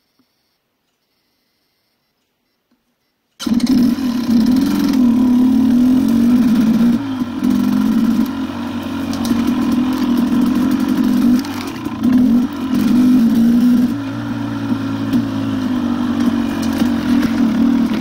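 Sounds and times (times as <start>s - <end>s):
dirt bike engine revving: 3.4s - 18.0s.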